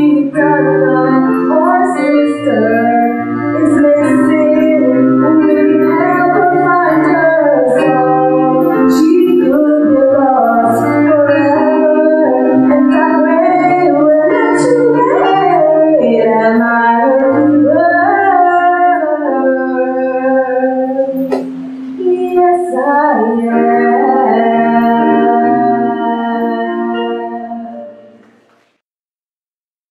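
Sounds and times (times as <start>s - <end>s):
woman singing gospel: 0.0s - 28.0s
electronic organ chords: 0.0s - 28.8s.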